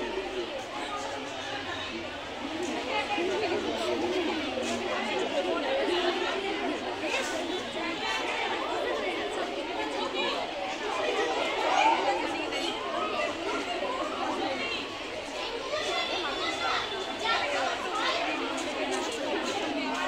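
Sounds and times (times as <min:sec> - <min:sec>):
chatter of many voices: 0:00.0 - 0:20.0.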